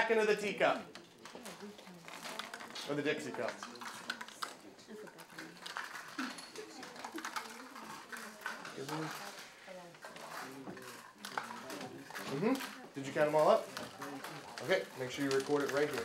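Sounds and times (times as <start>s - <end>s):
students talking softly: 0.0s - 16.0s
candies rattling into paper cups: 0.4s - 16.0s.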